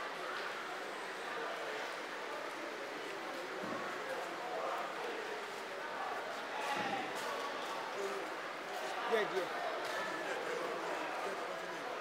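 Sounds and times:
indistinct voices in a hall: 0:00.0 - 0:12.0.

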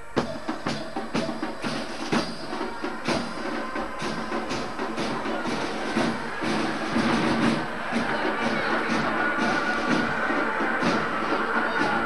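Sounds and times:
band music with drumbeat: 0:00.0 - 0:12.0
street crowd hubbub: 0:00.0 - 0:12.0.

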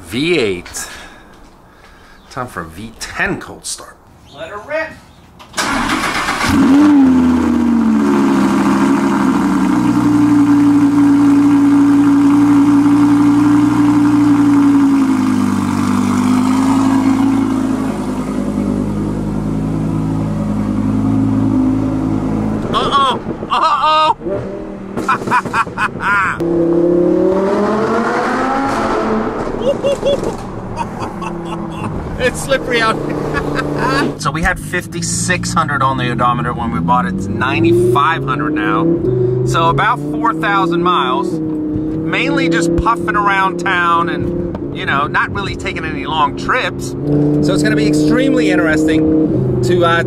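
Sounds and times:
car engine starting and idling: 0:05.4 - 0:50.0
car accelerating: 0:05.6 - 0:50.0.

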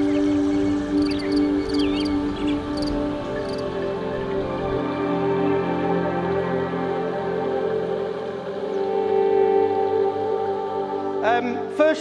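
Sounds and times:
soft ambient music: 0:00.0 - 0:12.0.

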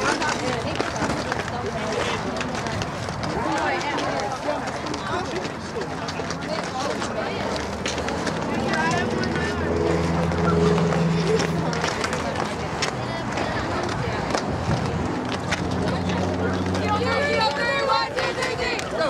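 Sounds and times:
distant people talking: 0:00.0 - 0:19.0
low engine-like hum: 0:06.3 - 0:19.0.

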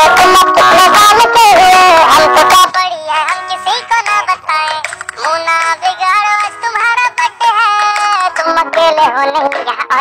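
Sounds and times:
high synthetic voice singing: 0:00.0 - 0:10.0
light musical backing: 0:00.0 - 0:10.0.

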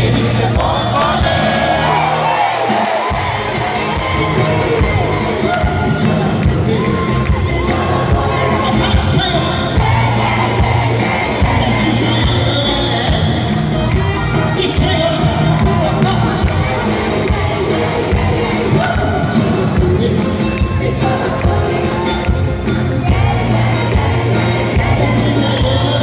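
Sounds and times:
man singing: 0:00.0 - 0:02.0, 0:03.7 - 0:26.0
crowd cheering and singing along: 0:00.0 - 0:26.0
live pop band playing: 0:00.0 - 0:26.0.

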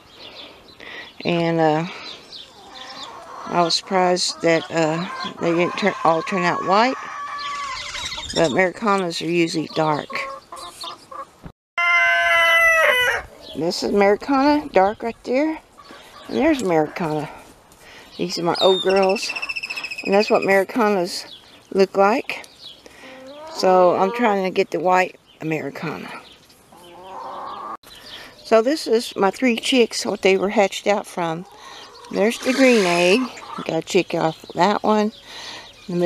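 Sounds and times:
hen calling: 0:01.6 - 0:14.9, 0:18.2 - 0:21.4, 0:22.9 - 0:24.8, 0:26.7 - 0:28.5, 0:31.1 - 0:33.8
chickens clucking: 0:02.0 - 0:17.5, 0:22.9 - 0:25.0, 0:25.8 - 0:28.4, 0:31.1 - 0:35.1
rooster crowing: 0:11.8 - 0:13.3.

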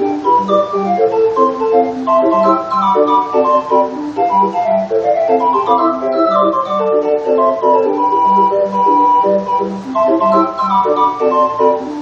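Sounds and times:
street organ playing: 0:00.0 - 0:12.0.

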